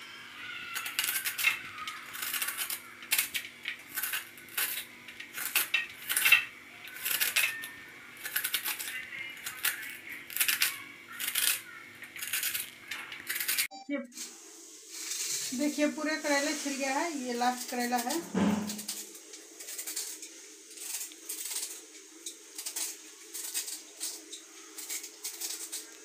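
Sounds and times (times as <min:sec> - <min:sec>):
vegetable peeler scraping gourd: 0:00.5 - 0:13.7, 0:15.0 - 0:26.0.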